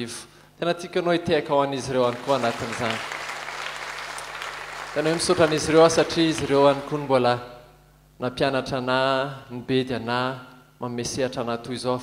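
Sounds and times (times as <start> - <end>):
steady low hum: 0.0 - 12.0
congregation clapping: 1.6 - 7.2.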